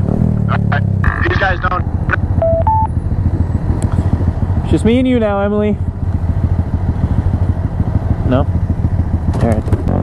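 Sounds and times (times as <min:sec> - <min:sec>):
motorcycle engines idling: 0:00.2 - 0:10.0.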